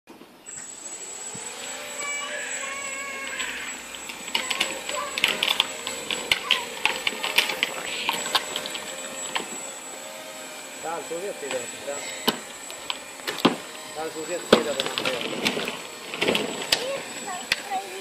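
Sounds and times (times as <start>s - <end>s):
quadcopter motors whining: 0.2s - 18.0s
irregular sharp clicks and taps: 3.4s - 9.6s, 12.2s - 13.7s, 14.5s - 17.7s.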